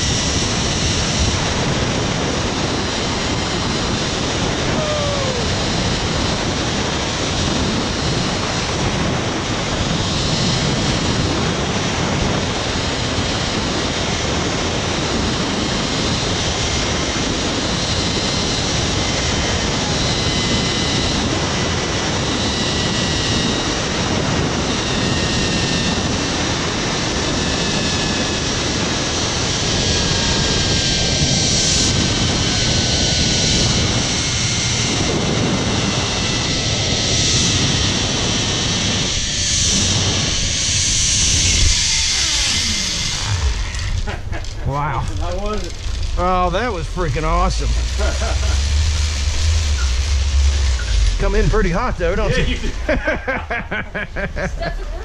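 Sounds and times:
pulley whine on cable: 0.0 - 55.0
wind rushing on microphone: 0.0 - 55.0.

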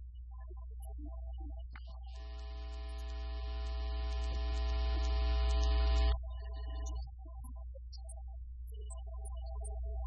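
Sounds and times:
dense electronic buzz: 2.2 - 6.2
electrical mains hum: 2.2 - 6.8.

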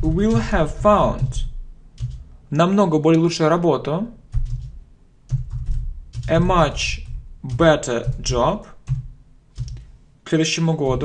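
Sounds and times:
computer keyboard typing: 0.0 - 2.3, 4.3 - 10.0.

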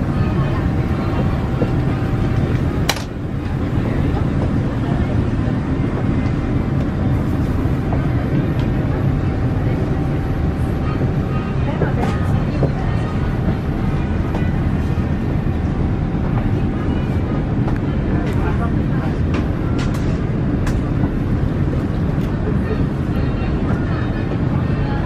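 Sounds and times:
air-conditioning rushing: 0.0 - 25.0.

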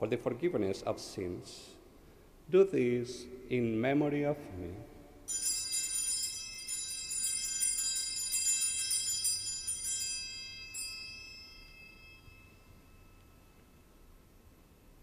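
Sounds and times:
altar bells ringing: 5.2 - 14.3.

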